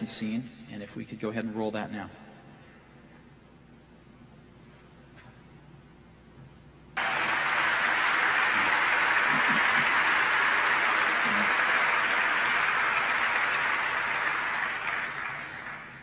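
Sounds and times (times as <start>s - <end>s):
large audience applauding: 7.0s - 16.0s.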